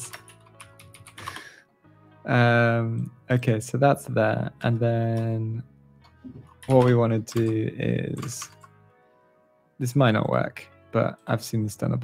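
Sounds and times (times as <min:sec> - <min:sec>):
typing on computer keyboard: 0:00.0 - 0:01.5, 0:06.5 - 0:08.7.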